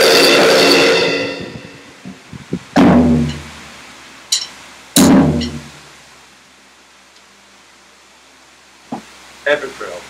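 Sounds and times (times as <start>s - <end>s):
electronic drum crash and bass stroke: 0.0s - 3.8s, 5.0s - 5.8s
steady hiss: 0.0s - 10.0s.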